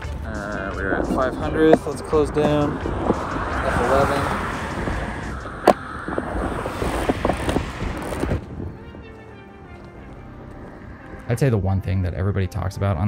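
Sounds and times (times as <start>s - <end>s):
wind buffeting microphone: 0.0s - 12.5s
faint music: 8.0s - 13.0s.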